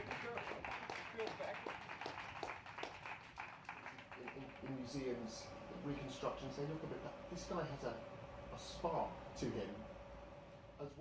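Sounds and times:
people clapping: 0.0s - 5.5s.

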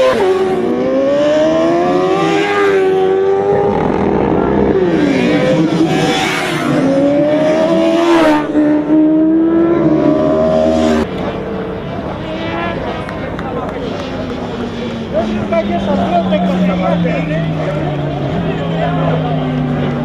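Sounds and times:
sportbike engine at high revs: 0.0s - 11.4s.

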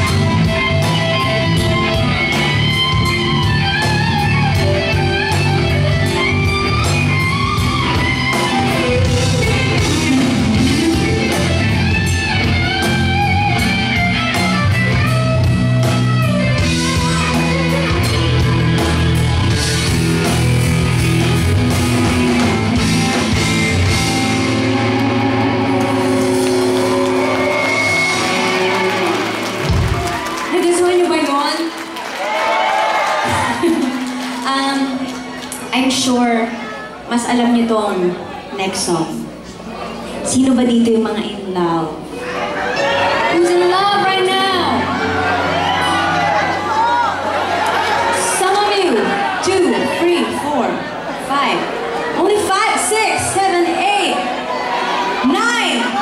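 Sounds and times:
electric guitar lead: 0.0s - 32.0s, 41.2s - 56.0s
drums: 0.0s - 37.9s
live rock band playing: 0.0s - 56.0s.

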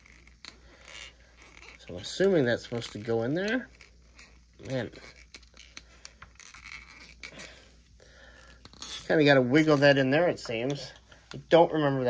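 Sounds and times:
soft plastic rubbing: 0.0s - 11.5s.

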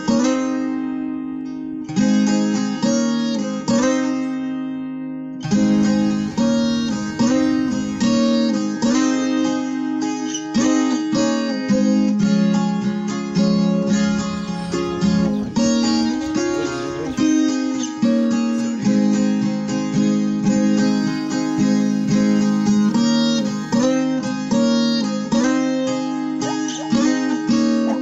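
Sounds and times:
acoustic string instrument strummed: 0.0s - 28.0s.

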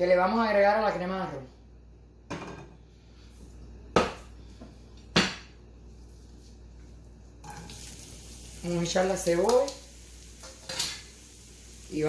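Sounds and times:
cookware knocking and clinking: 2.3s - 2.7s
onion sizzling in skillet: 7.4s - 12.0s.

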